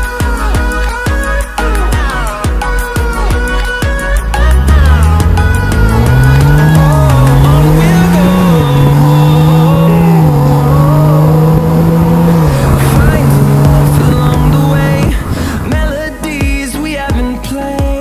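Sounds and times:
car engine running: 0:03.2 - 0:16.6.

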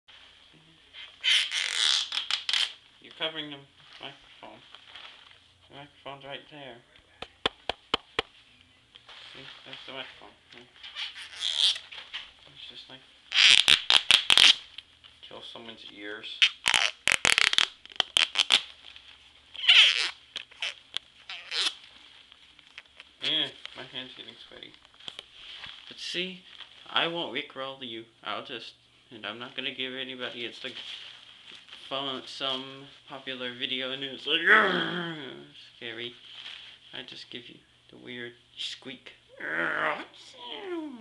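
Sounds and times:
hand squeaking on microphone: 0:01.0 - 0:02.7, 0:10.8 - 0:12.0, 0:19.6 - 0:21.8.

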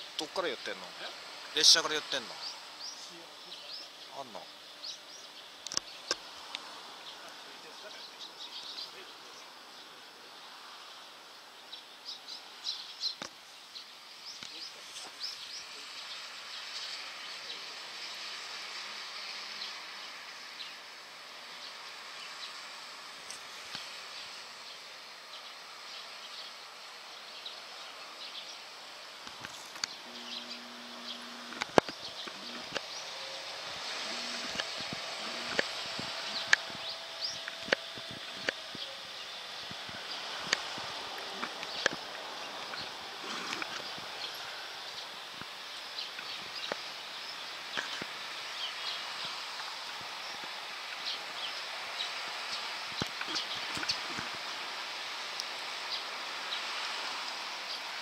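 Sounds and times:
small birds chirping: 0:00.4 - 0:58.0.

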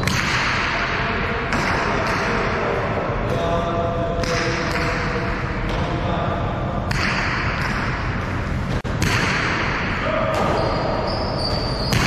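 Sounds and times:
ball cracking against wall echoing: 0:00.0 - 0:12.0.

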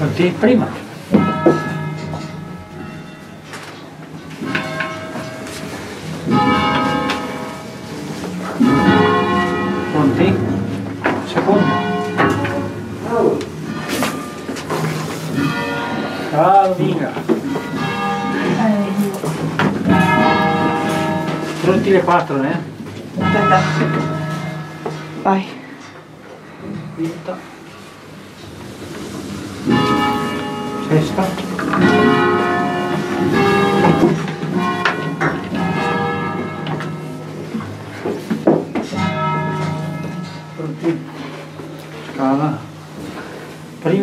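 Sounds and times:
church bells ringing: 0:00.0 - 0:44.0.

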